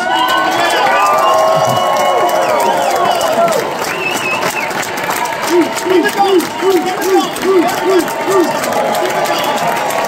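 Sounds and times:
audience cheering and applauding: 0.0 - 10.0
people shouting: 5.4 - 10.0.

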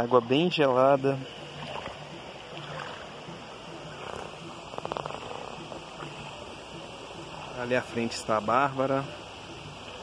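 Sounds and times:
shallow creek water running: 0.0 - 10.0
feet wading through water: 1.3 - 6.4.

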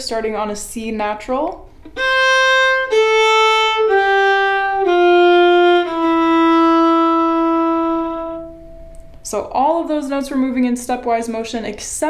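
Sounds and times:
solo violin bowing: 1.8 - 8.9.

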